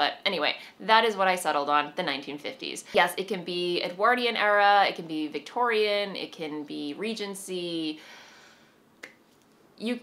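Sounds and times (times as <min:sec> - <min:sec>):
woman speaking: 0:00.0 - 0:08.0, 0:09.8 - 0:10.0.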